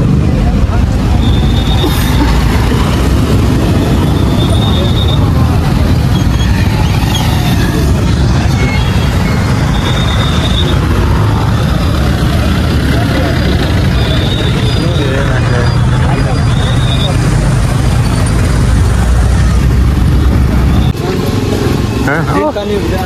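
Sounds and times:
people talking: 0.0 - 3.1, 3.8 - 6.2, 11.1 - 17.7, 20.8 - 23.0
vehicle engines running: 0.0 - 23.0.

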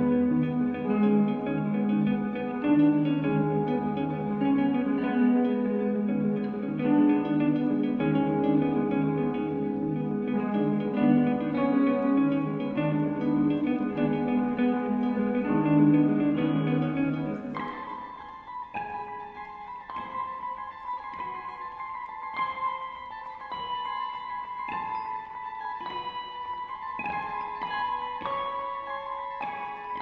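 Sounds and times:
electric guitars playing: 0.0 - 30.0.

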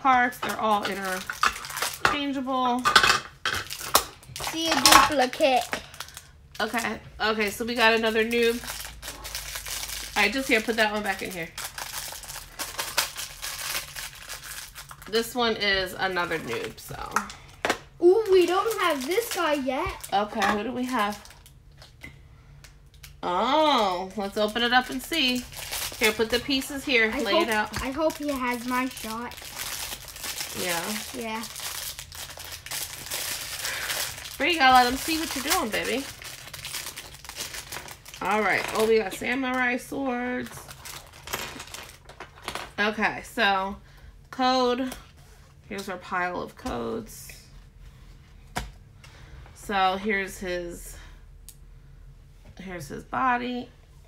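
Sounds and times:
plastic packaging crinkling: 0.4 - 2.2, 3.4 - 15.4, 18.1 - 22.0, 24.2 - 42.8.

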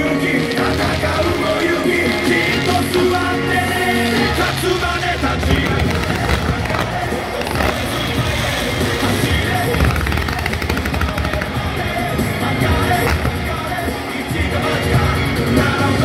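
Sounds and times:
loud show music: 0.0 - 16.0
pyrotechnics crackling and popping: 0.0 - 16.0.

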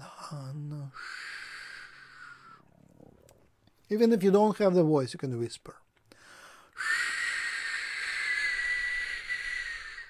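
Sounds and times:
person hissing through teeth: 0.9 - 2.6, 6.8 - 10.0.

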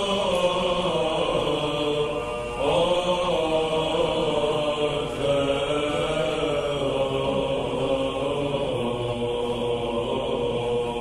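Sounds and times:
held low drone: 0.0 - 11.0
male voices chanting: 0.0 - 11.0.

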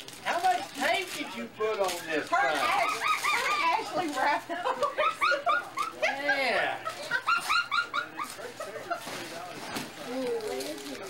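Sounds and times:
woman laughing: 4.2 - 9.1.

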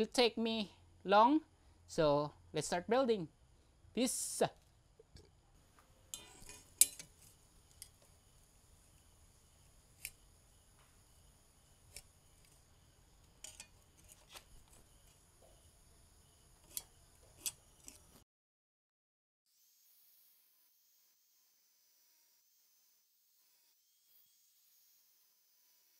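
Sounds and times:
faint high-pitched whine: 0.0 - 18.2.

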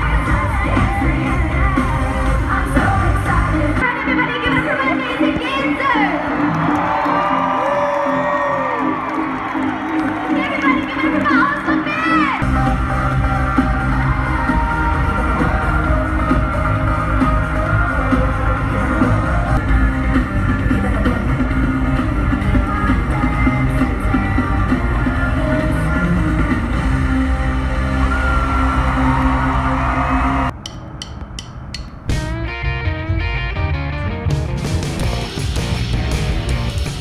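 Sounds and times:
live pop concert music: 0.0 - 37.0
strummed guitar music: 32.1 - 36.8.

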